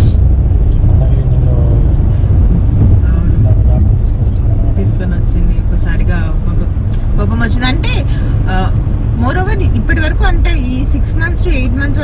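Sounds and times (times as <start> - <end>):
car engine and tyres rumbling: 0.0 - 12.0.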